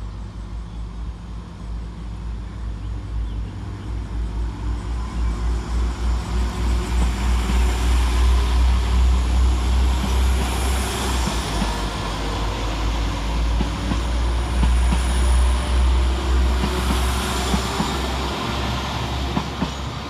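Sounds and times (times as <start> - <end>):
train rumbling past: 0.0 - 20.0.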